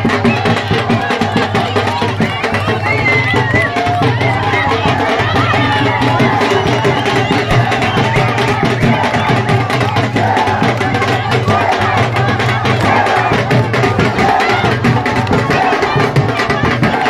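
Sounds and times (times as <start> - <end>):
crowd shouting and chanting: 0.0 - 17.0
drum beating fast rhythm: 0.0 - 17.0.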